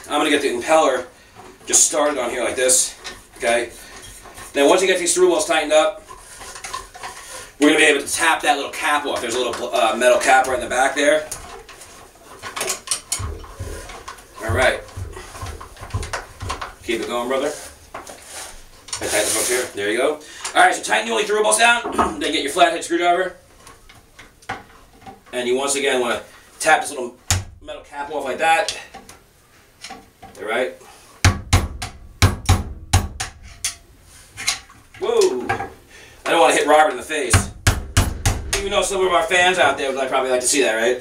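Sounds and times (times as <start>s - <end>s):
hand tools clicking and knocking: 0.0s - 19.2s, 31.2s - 36.6s, 37.2s - 40.0s.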